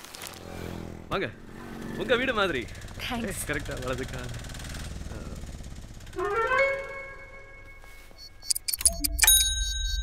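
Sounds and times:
rising musical note: 0:06.1 - 0:08.0.

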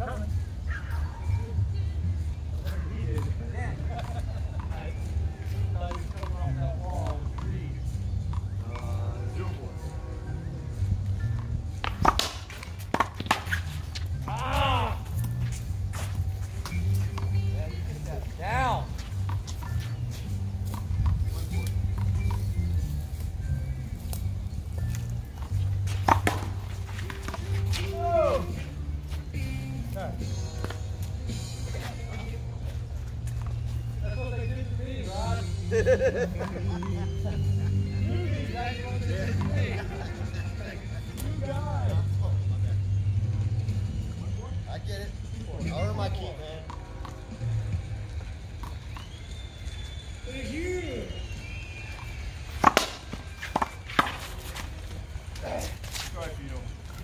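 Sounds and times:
music: 0:00.0 - 0:57.0
voices: 0:00.0 - 0:57.0.

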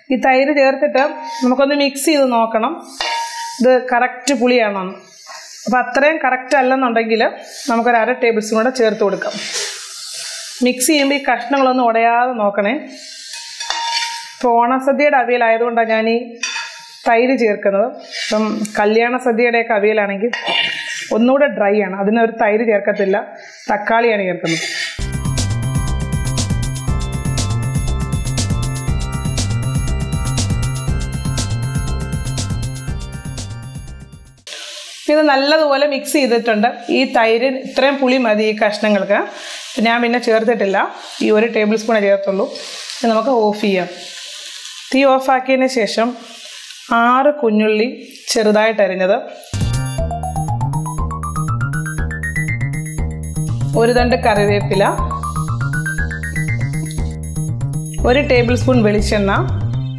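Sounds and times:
woman speaking: 0:00.0 - 0:02.9, 0:03.6 - 0:05.0, 0:05.6 - 0:09.5, 0:10.6 - 0:12.9, 0:17.1 - 0:20.4, 0:21.0 - 0:24.7, 0:35.1 - 0:44.0, 0:46.9 - 0:49.3, 0:53.8 - 0:55.1, 0:58.0 - 0:59.6
metal spatula scraping a pan: 0:01.1 - 0:01.6, 0:02.2 - 0:03.8, 0:09.0 - 0:11.8, 0:13.0 - 0:14.5, 0:16.4 - 0:17.2, 0:18.0 - 0:18.8, 0:20.4 - 0:21.2, 0:36.1 - 0:45.0
faint steady hiss: 0:39.3 - 0:47.2.

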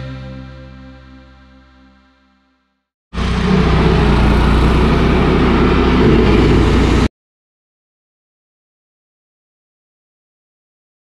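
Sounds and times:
stump grinder engine running: 0:03.2 - 0:07.1.

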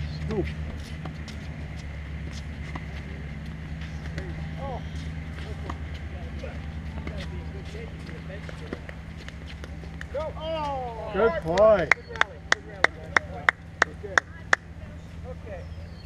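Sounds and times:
steady low hum: 0:00.0 - 0:16.0
tennis balls bouncing on court: 0:00.3 - 0:10.2
tennis rackets hitting balls: 0:00.3 - 0:10.6.

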